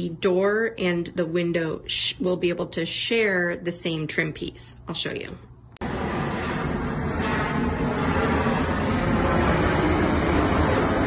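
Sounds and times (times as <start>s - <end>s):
jet airliner flying overhead: 5.8s - 11.0s.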